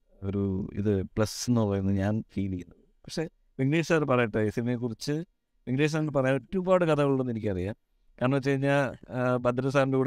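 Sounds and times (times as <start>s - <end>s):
man talking: 0.2s - 10.0s.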